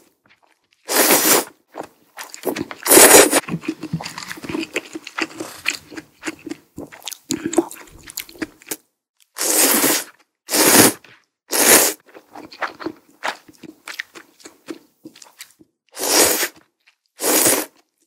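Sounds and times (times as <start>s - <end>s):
loud noodle slurps: 0.9s - 1.6s, 2.2s - 8.4s, 9.4s - 13.5s, 16.0s - 16.6s, 17.2s - 17.8s
wet chewing: 1.7s - 8.8s, 12.0s - 18.0s.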